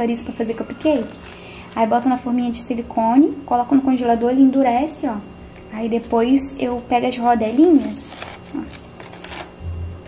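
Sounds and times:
plastic bag crinkling: 0.5s - 2.1s, 7.2s - 9.6s.

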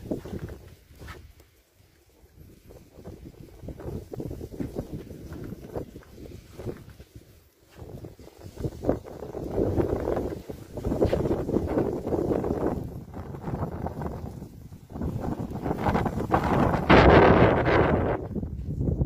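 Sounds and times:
wind buffeting microphone: 0.0s - 1.4s, 2.1s - 19.0s.

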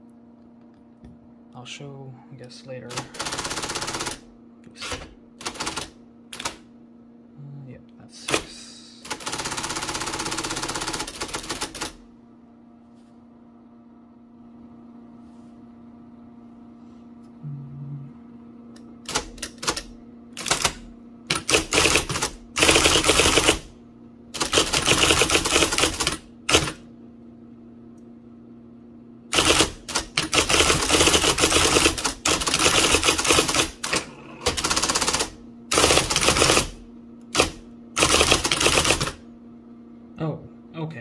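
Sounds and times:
steady hum: 0.0s - 41.0s
electric typewriter typing: 2.8s - 6.7s, 8.2s - 12.0s, 19.0s - 26.8s, 29.3s - 39.2s.

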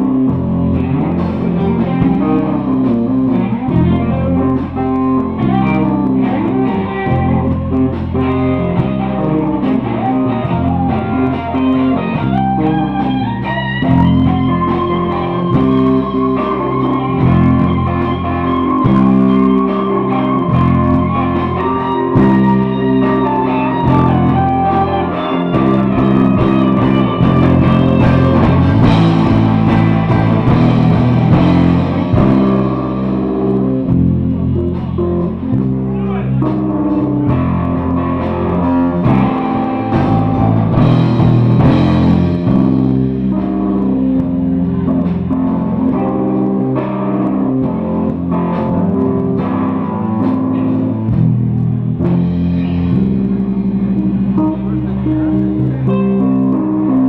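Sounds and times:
electric guitar: 0.0s - 57.0s
live rock band playing: 0.0s - 57.0s.

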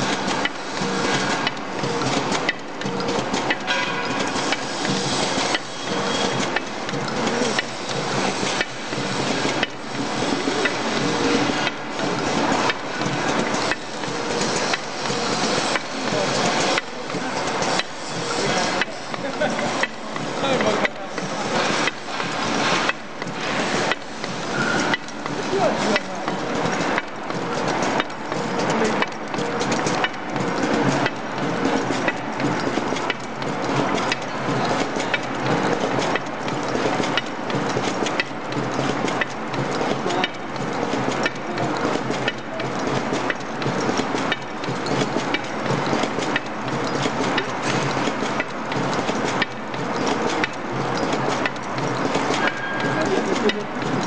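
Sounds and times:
machine metallic clacks: 0.0s - 54.0s
mechanical running noise: 0.0s - 54.0s.

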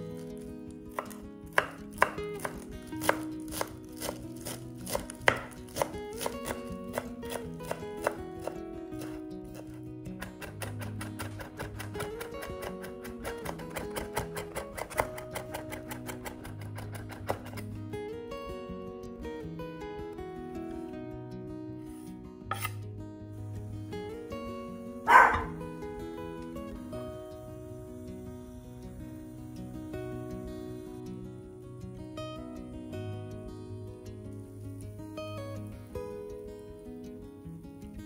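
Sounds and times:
knife chopping on wooden board: 0.9s - 17.6s, 22.5s - 22.8s, 25.1s - 25.5s.

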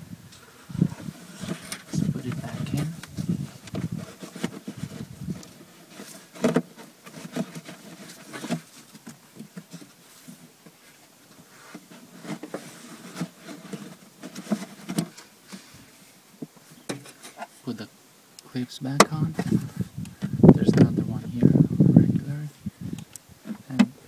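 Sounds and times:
plastic filter cover scraping: 0.4s - 10.8s, 11.4s - 15.8s.

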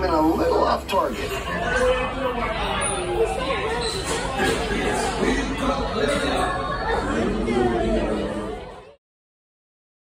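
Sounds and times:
indistinct talking in hall: 0.0s - 9.0s.

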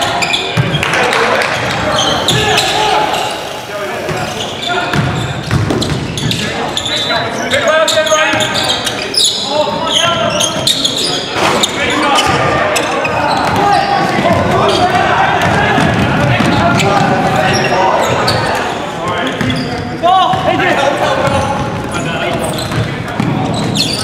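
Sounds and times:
shoe squeaks and knocks: 0.0s - 0.9s, 1.5s - 3.4s, 4.2s - 14.0s, 16.5s - 19.9s, 21.2s - 24.0s
players calling out: 0.0s - 24.0s
ball bouncing on hardwood floor: 21.3s - 23.7s.

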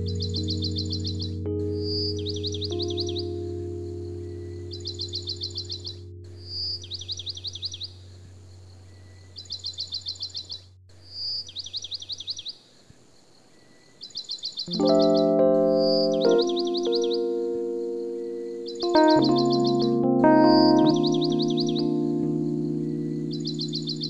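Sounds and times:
electric piano music: 0.0s - 8.4s, 14.6s - 24.0s
ambient music held chord: 0.0s - 8.9s, 14.7s - 24.0s.

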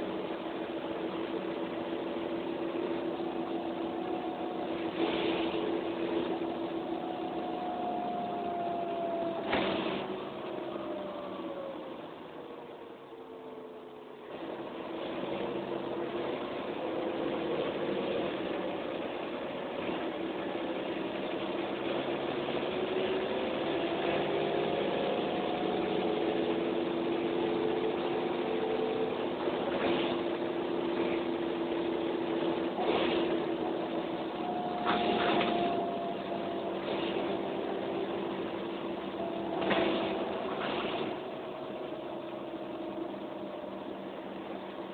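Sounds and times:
bus diesel engine: 0.0s - 44.9s.

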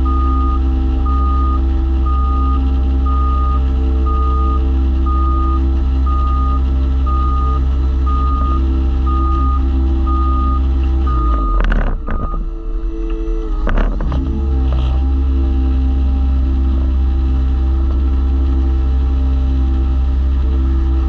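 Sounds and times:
reversing alarm beeps: 0.0s - 13.5s
roller engine running: 0.0s - 21.0s.

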